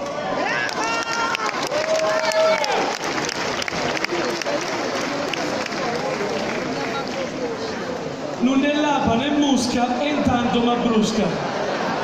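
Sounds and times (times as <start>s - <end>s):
crowd voices: 0.0s - 12.0s
audience applauding: 0.3s - 7.9s.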